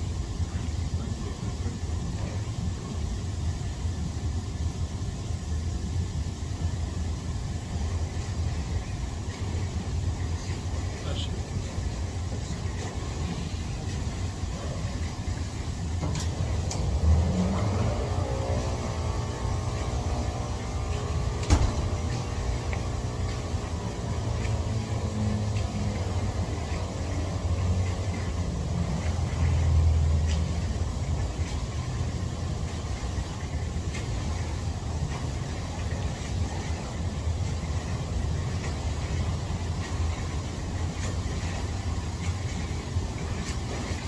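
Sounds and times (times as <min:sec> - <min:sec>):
jacuzzi jets churning water: 0:00.0 - 0:44.0.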